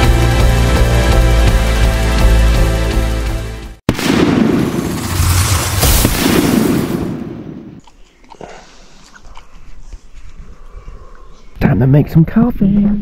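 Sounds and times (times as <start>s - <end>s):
explosion with rumble: 3.9s - 7.7s
faint outdoor ambience: 6.8s - 13.0s.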